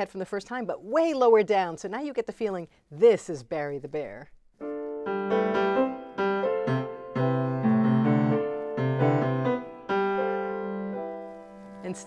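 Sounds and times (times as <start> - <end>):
grand piano playing chords: 4.6 - 12.0.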